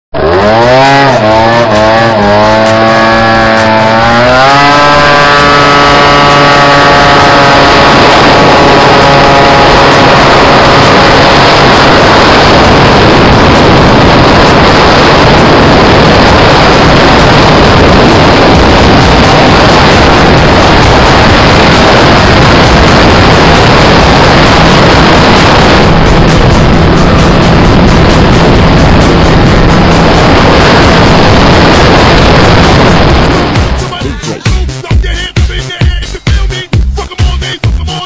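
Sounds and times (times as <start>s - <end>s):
wind rushing: 0.1s - 34.5s
scooter engine accelerating: 0.1s - 35.0s.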